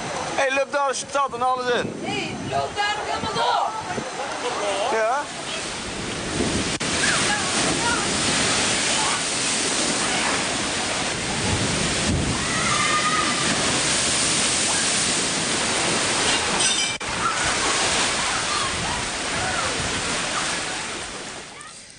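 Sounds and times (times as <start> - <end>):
floodwater rushing: 0.0 - 21.9.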